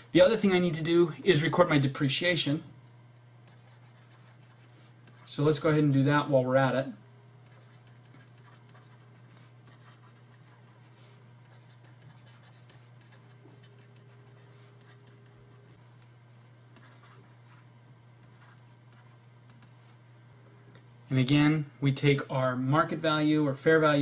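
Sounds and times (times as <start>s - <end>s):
stylus scratching on drawing tablet: 3.4s - 5.4s, 7.4s - 20.0s.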